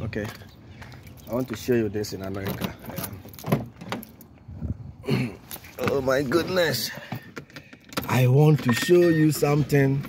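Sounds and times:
keys jangling: 2.2 - 4.3.

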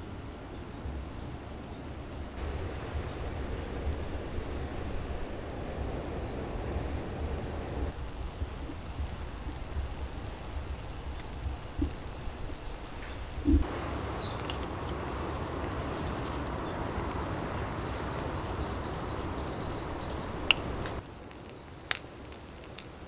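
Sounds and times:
lobster sizzling on charcoal grill: 7.8 - 23.0.

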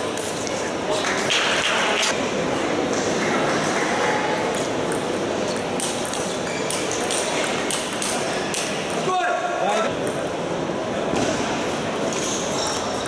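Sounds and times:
crowd murmur in a hall: 0.0 - 13.0.

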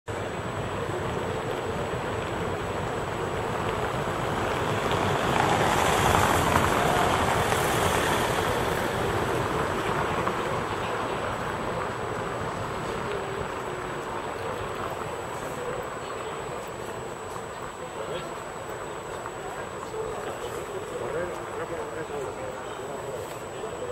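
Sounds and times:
outdoor rushing noise: 0.1 - 23.9.

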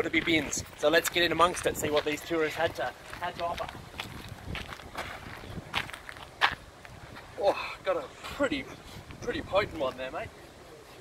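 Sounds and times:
footsteps on gravel: 0.0 - 7.4.

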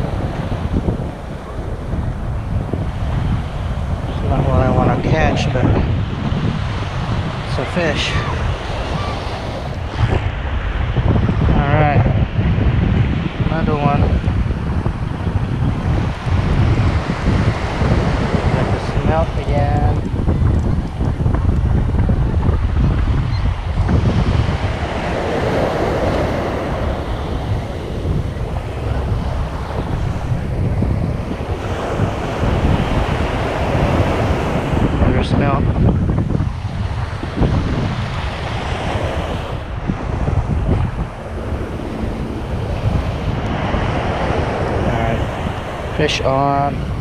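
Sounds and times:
waves washing up a sandy beach: 0.0 - 47.0
wind buffeting microphone: 0.0 - 47.0.

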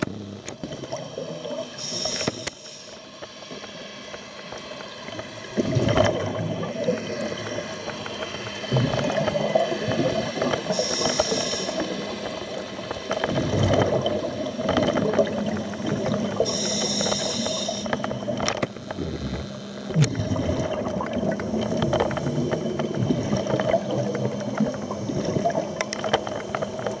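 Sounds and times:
underwater drone: 0.0 - 27.0
hissing regulator inhalations: 1.8 - 3.0, 10.7 - 11.9, 16.4 - 17.9
bubbling exhalations: 19.0 - 25.8.

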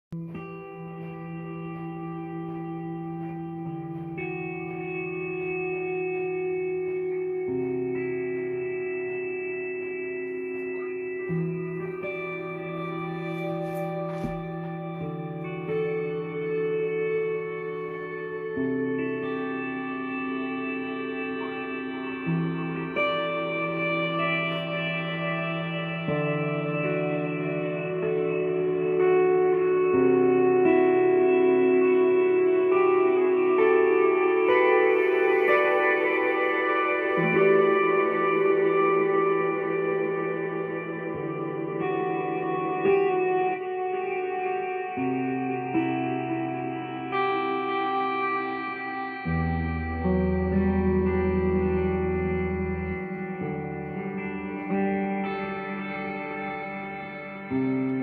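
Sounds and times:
electric guitar chords with reverb: 0.1 - 58.0.

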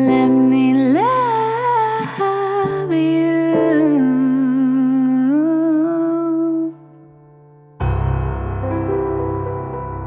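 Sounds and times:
low musical accompaniment: 7.4 - 10.0.

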